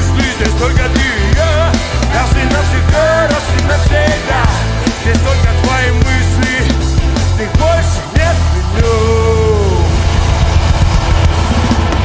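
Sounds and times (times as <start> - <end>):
live rock band music: 0.0 - 12.0.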